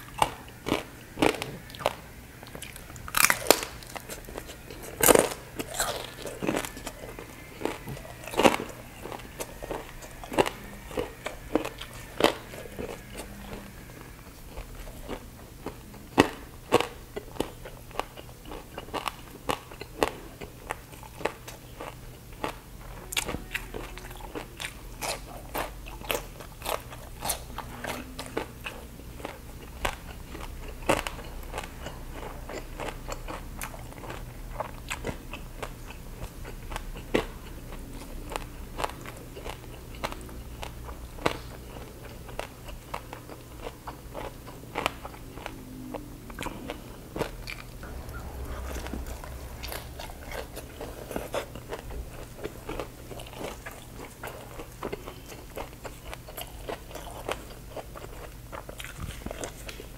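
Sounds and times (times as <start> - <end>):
person chewing crunchy food: 0.0 - 59.9.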